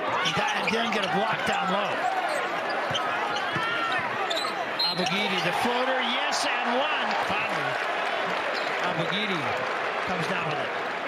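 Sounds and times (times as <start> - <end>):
sneakers squeaking on hardwood: 0.1 - 5.5.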